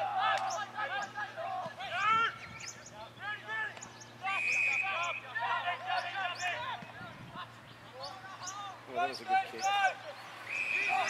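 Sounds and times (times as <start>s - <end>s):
players shouting: 0.0s - 11.0s
whistle note: 4.3s - 5.2s.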